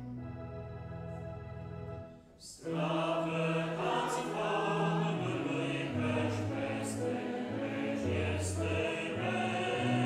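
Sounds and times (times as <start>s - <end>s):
grand piano accompaniment: 0.0s - 10.0s
congregation singing a hymn: 2.4s - 10.0s.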